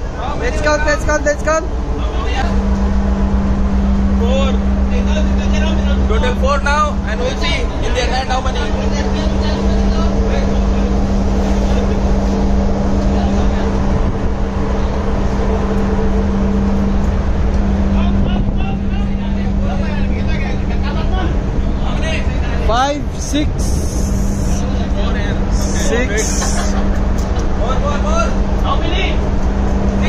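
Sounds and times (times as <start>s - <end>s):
low hum of ship machinery: 0.0s - 30.0s
wind rumble on microphone: 0.0s - 30.0s
faint voices: 17.9s - 26.9s.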